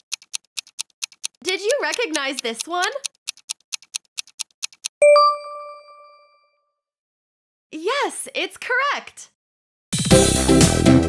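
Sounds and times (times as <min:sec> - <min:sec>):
quick clock-like ticks: 0:00.0 - 0:05.0.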